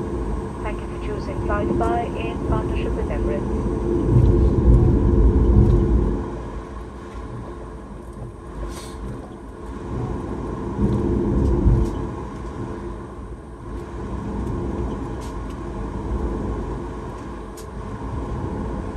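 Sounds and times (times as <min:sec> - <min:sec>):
jet engines rumbling: 0:00.0 - 0:18.9.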